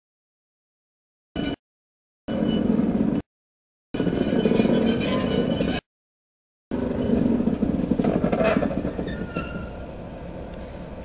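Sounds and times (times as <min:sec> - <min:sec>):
diesel locomotive engine throbbing: 0:06.7 - 0:11.0.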